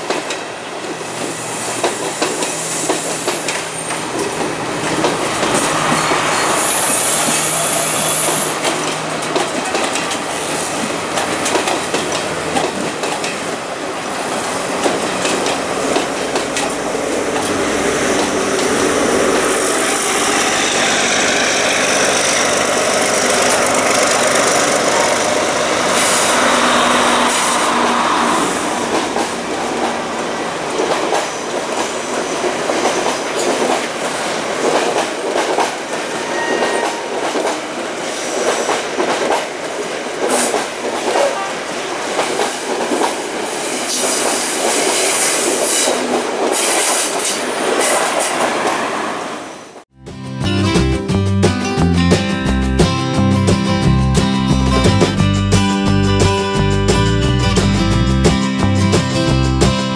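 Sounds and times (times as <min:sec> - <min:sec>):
wheels clacking over rail joints: 0:00.0 - 0:41.4
train wheels rumbling on rail: 0:00.0 - 0:49.8.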